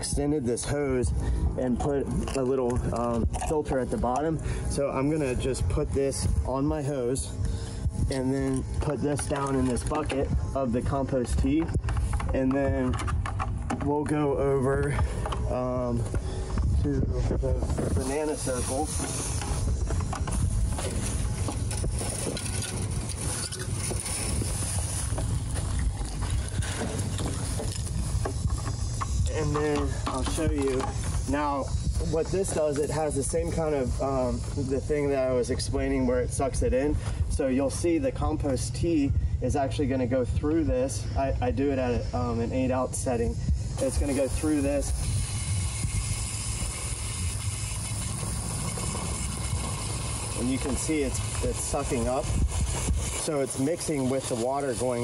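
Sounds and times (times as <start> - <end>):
low steady rumble: 0.0 - 55.0
wind buffeting microphone: 0.0 - 55.0
sprayer hissing water jet: 14.2 - 37.1, 41.5 - 55.0
footsteps on dry pine straw: 16.0 - 32.8.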